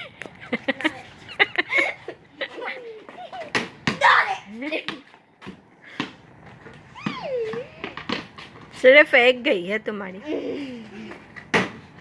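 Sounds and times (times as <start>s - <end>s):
laughter: 0.0s - 3.4s
rubber ball bouncing on concrete: 3.0s - 8.8s.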